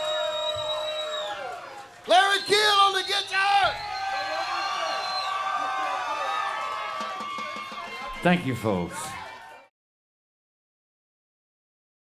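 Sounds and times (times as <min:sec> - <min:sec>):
audience cheering and applauding: 0:00.0 - 0:09.7.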